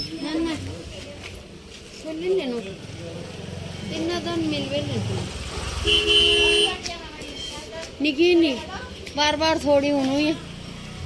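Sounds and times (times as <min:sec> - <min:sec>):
vehicle horn honking: 0:05.8 - 0:06.8.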